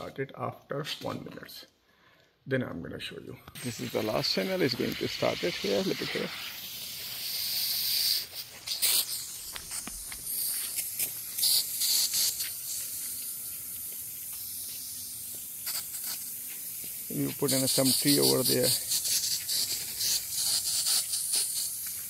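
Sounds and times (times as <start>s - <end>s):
lawn sprinklers spraying water: 3.6s - 22.0s.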